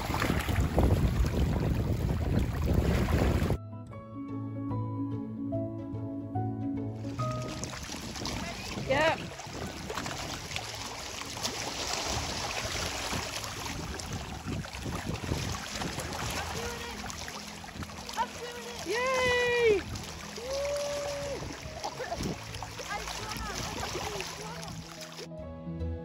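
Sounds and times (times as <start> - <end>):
small waves lapping: 0.0 - 3.6, 7.0 - 25.3
wind buffeting microphone: 0.0 - 3.6, 7.2 - 25.0.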